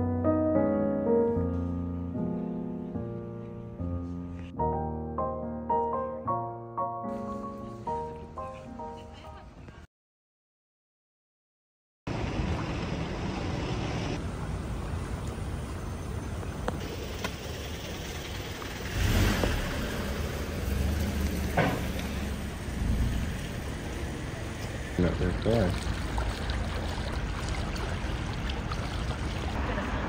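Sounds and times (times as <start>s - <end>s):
car passing close by: 16.8s - 30.0s.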